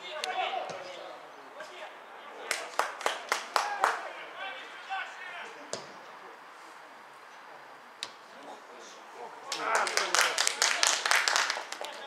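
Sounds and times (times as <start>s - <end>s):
person clapping hands quickly: 9.5s - 12.0s.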